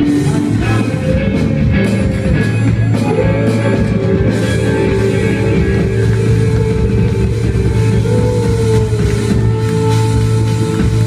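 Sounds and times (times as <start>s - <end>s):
live worship band music: 0.0s - 11.0s.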